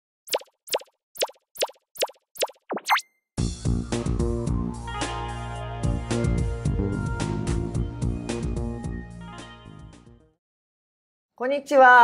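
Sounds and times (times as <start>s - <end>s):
plopping pops dropping in pitch: 0.3s - 3.1s.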